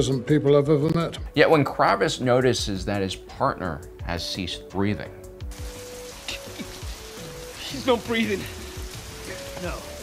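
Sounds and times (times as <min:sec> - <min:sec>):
soft background music: 0:00.0 - 0:10.0
rain falling: 0:05.4 - 0:10.0.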